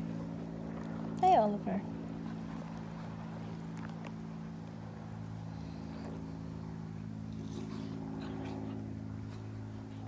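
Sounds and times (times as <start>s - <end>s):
steady low hum: 0.0s - 10.0s
dogs wrestling on grass: 1.9s - 10.0s.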